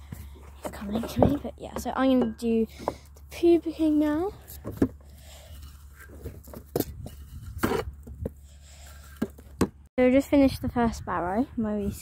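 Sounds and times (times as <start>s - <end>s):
shovel scraping and knocking: 4.4s - 9.8s.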